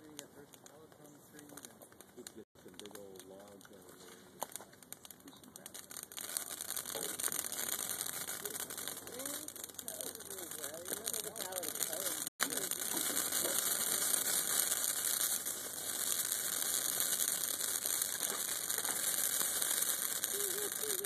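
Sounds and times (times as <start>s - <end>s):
fire hissing and crackling: 0.0s - 21.0s.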